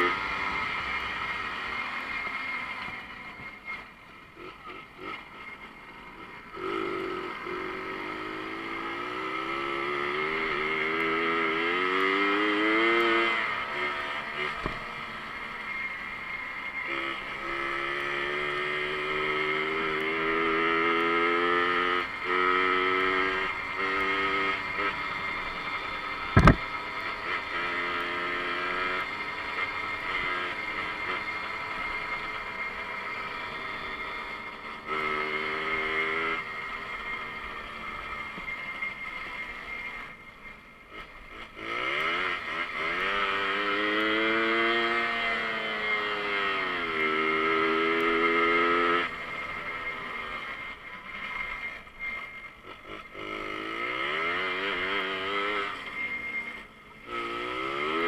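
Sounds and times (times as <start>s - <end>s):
moped engine accelerating: 0.0s - 58.0s
sharp knock: 26.4s - 26.6s.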